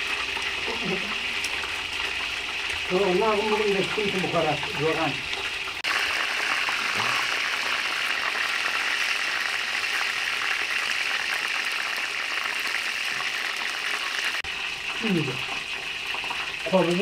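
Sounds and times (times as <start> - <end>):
chicken deep-frying in oil: 0.0 - 17.0.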